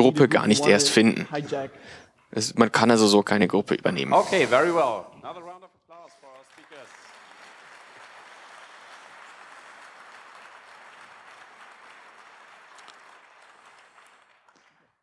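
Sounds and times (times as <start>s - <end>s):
audience applause: 6.0s - 15.0s.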